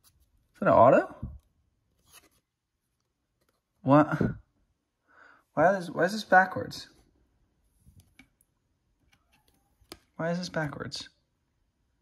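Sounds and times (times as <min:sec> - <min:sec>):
rustle of cardboard cards: 0:01.9 - 0:02.6.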